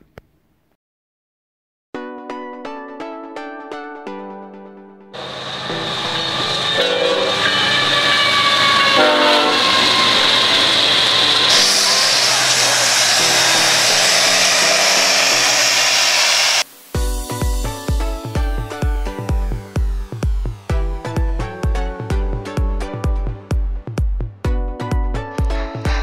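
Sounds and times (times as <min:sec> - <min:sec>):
train air horn chord: 0:05.2 - 0:16.6
diesel locomotive engines: 0:05.2 - 0:16.7
loud rush of rail noise: 0:05.2 - 0:16.9.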